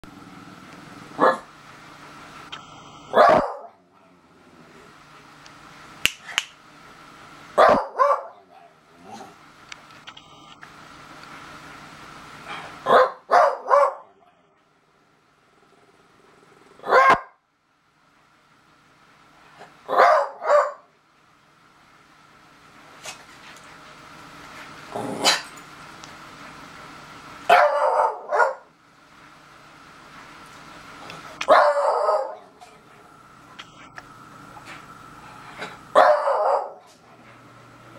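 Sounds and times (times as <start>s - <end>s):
dog barking: 1.2s - 1.5s, 3.1s - 3.8s, 7.6s - 8.8s, 12.9s - 14.2s, 16.8s - 17.4s, 19.9s - 20.9s, 27.5s - 28.7s, 31.4s - 32.5s, 36.0s - 36.8s.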